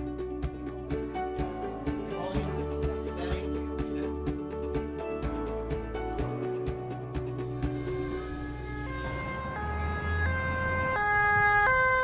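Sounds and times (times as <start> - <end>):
two-tone siren: 7.9 - 12.0.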